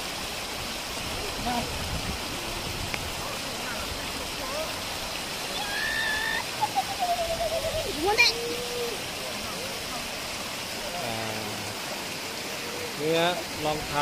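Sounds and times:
stream rushing over stones: 0.0 - 14.0.

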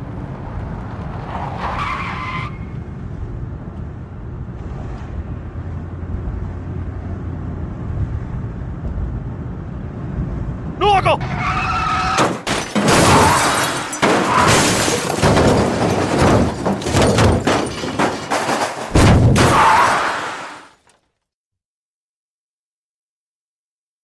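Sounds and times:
truck engine and road rumble: 0.0 - 21.1
person speaking: 10.8 - 11.2.

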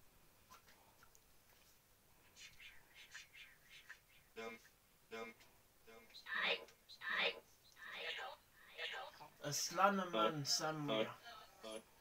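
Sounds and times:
person whispering: 2.3 - 9.1.

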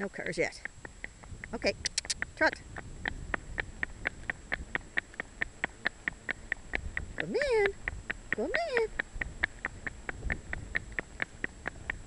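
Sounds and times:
cart wheels rumbling on road: 0.0 - 12.0
hoof clops: 0.0 - 12.0.

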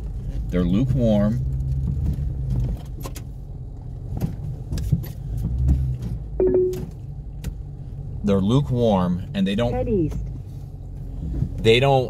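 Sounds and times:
car cabin rumble: 0.0 - 12.0
short tone: 6.4 - 7.0.

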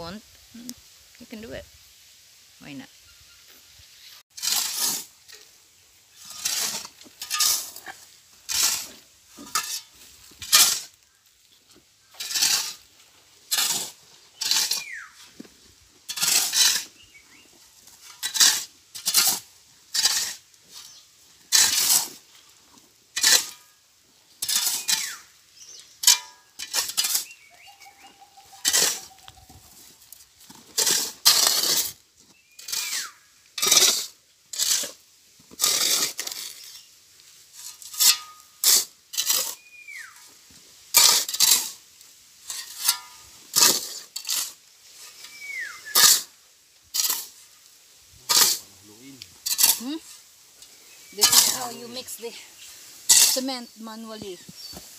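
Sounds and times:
shovels scraping gravel and sand: 3.5 - 54.9.

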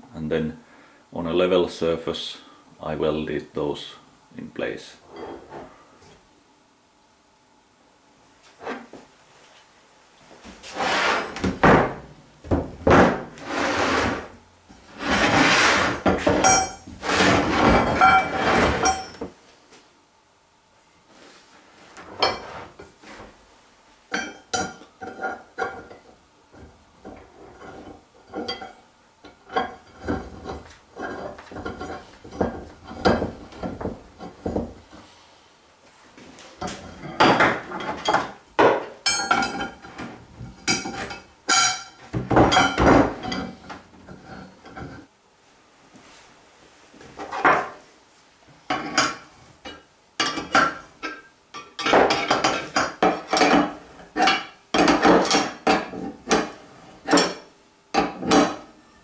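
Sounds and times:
steel tubes clanking and knocking: 16.0 - 19.2, 39.1 - 45.0.

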